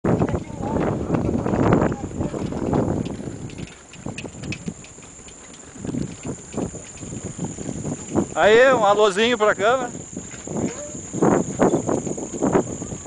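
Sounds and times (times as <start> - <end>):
wind noise on microphone: 0.0 - 13.0
wooden planks clattering under bicycle: 0.1 - 13.0.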